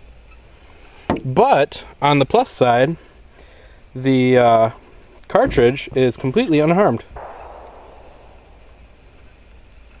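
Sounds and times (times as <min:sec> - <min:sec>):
even hiss: 0:00.0 - 0:10.0
low rumble: 0:07.1 - 0:09.9.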